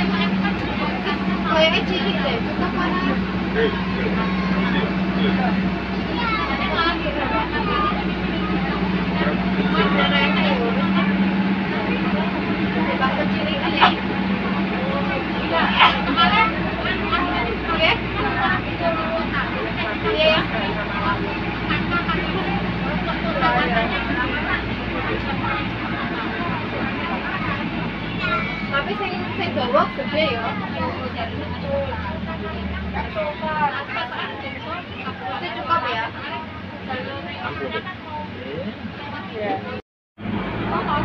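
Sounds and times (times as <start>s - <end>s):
bus engine drone: 0.0s - 41.0s
passengers chattering: 0.0s - 41.0s
road noise: 0.0s - 41.0s.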